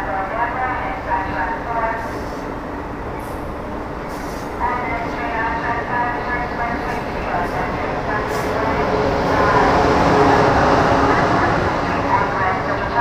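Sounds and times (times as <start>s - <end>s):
train rolling past: 0.0s - 13.0s.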